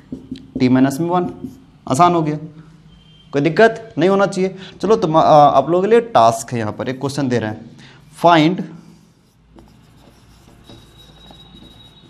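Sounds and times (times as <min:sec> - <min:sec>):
marker pen scratching on whiteboard: 0:00.0 - 0:01.7, 0:08.0 - 0:12.0.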